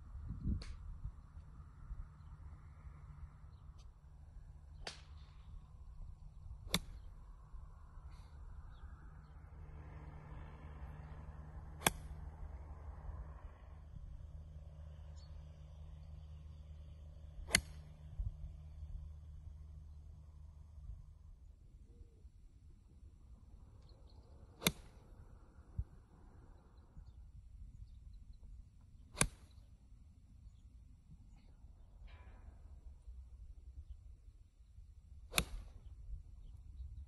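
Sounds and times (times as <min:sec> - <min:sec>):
golf club striking ball: 0:06.5 - 0:07.1, 0:11.6 - 0:12.3, 0:17.4 - 0:18.2, 0:24.6 - 0:25.0, 0:35.3 - 0:35.8.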